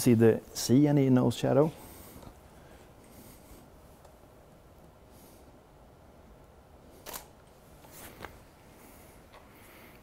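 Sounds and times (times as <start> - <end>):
camera shutter click: 7.0 - 7.4.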